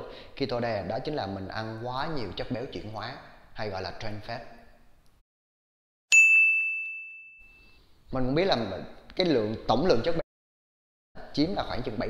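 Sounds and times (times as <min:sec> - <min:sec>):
bell-like ding: 0:06.1 - 0:07.8.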